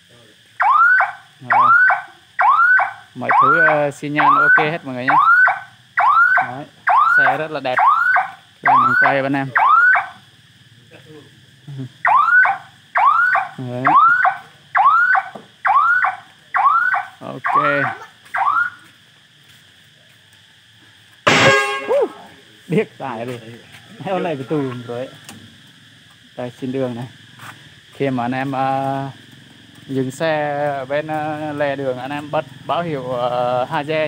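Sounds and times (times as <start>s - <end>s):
turn signal buzzer chirp: 21.3s - 22.3s.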